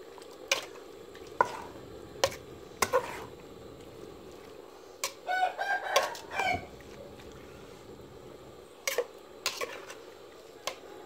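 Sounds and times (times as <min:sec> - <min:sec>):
rooster crowing: 0:05.2 - 0:06.8.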